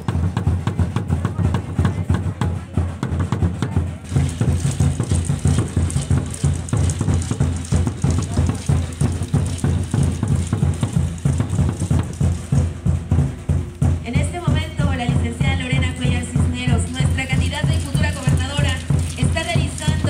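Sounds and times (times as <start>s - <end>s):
deep wooden drum beats: 0.0s - 20.0s.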